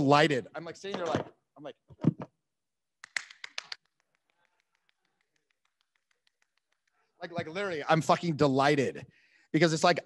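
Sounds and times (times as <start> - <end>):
hands clapping: 2.9 - 7.7.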